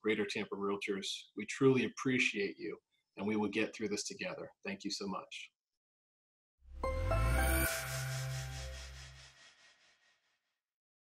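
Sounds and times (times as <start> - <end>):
low bass note: 6.7 - 9.3
pulsing shimmering hiss: 7.0 - 9.6.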